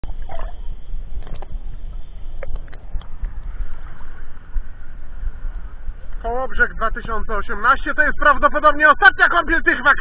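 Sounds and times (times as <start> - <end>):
muffled underwater rumble: 0.0 - 10.0
sea water gurgling: 0.0 - 10.0.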